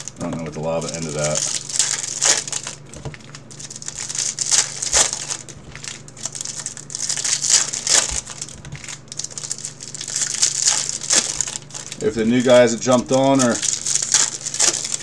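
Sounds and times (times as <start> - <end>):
foil wrapper crinkling: 0.0 - 15.0.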